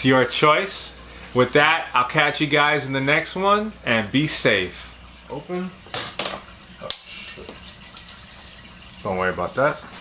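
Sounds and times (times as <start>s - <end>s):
glass bottle clinking: 5.9s - 8.8s.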